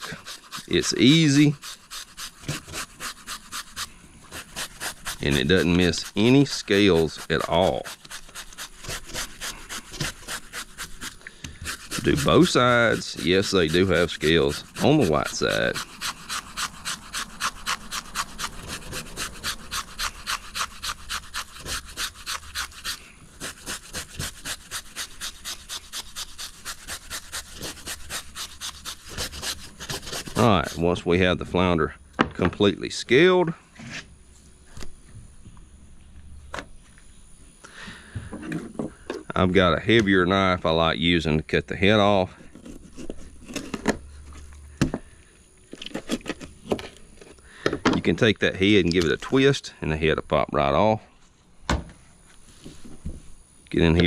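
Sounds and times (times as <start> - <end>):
wire brush scraping fish scales: 0.0 - 31.1.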